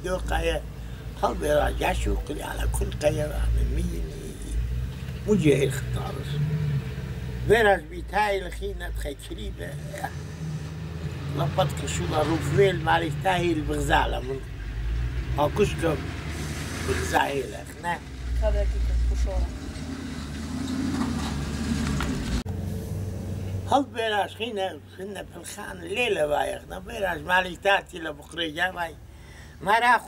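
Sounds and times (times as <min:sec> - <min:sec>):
man speaking: 0:00.0 - 0:04.6, 0:05.2 - 0:06.4, 0:07.5 - 0:10.1, 0:11.3 - 0:14.5, 0:15.4 - 0:16.0, 0:16.8 - 0:18.0, 0:23.7 - 0:29.0, 0:29.6 - 0:30.0
vehicle engine running: 0:00.0 - 0:24.4.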